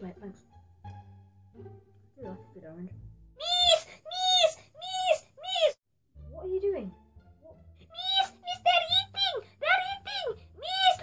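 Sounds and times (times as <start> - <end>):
boy calling out: 3.4 - 5.8, 7.9 - 11.0.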